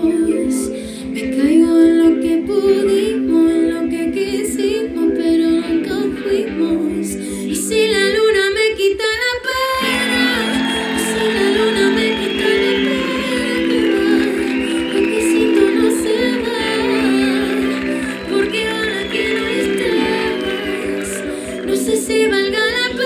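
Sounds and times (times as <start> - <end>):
woman singing slow ballad: 0.0 - 23.0.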